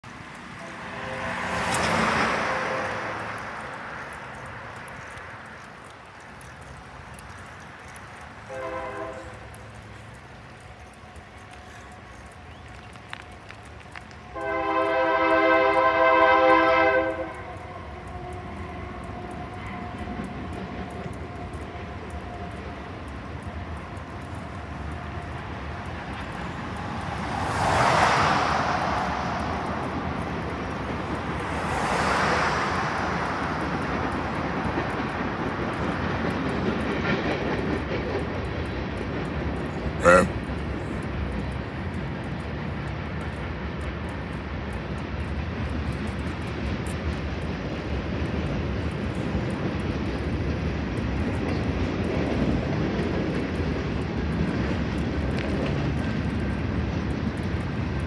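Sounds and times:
rushing noise: 0.0s - 5.5s, 14.2s - 58.0s
road and rail rumble: 0.0s - 58.0s
locomotive air horn blast: 0.6s - 3.4s, 8.5s - 9.4s, 14.3s - 17.6s.

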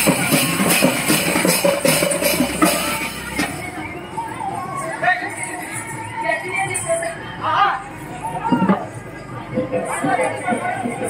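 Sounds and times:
frame drums beaten quickly: 0.0s - 3.7s
jingling bells: 0.0s - 11.0s.

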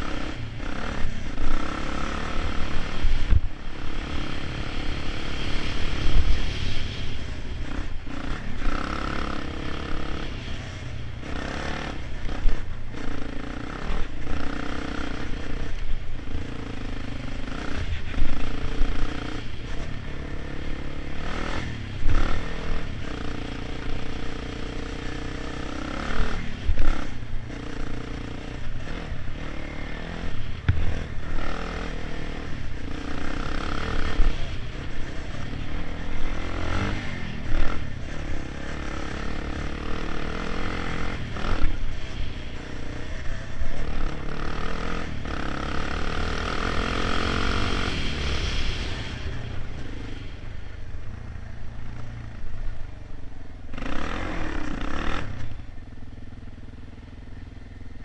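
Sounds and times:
quad bike engine revving: 0.0s - 10.6s, 11.2s - 50.4s, 53.7s - 55.6s.

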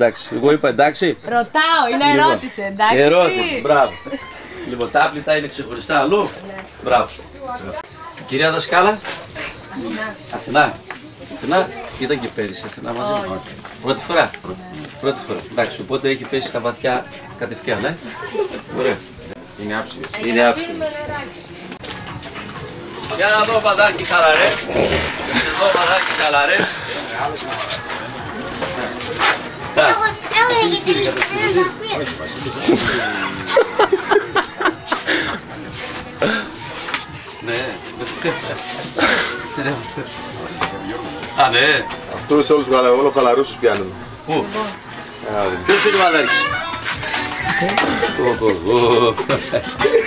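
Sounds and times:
music playing: 0.0s - 50.0s
people exclaiming and laughing: 0.0s - 50.0s
people talking overlapping: 0.0s - 50.0s.

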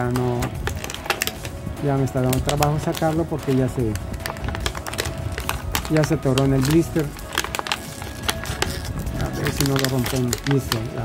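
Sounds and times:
plastic packaging crackling: 0.0s - 11.0s.

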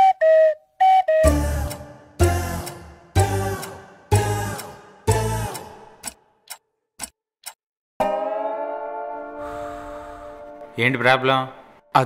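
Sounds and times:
clock ticking: 1.2s - 7.6s.

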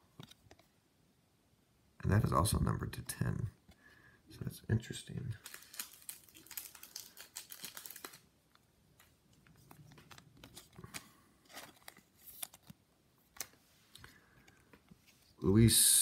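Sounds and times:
plastic wrapper crinkling: 5.4s - 14.1s
cards sliding and clicking: 9.0s - 15.4s.

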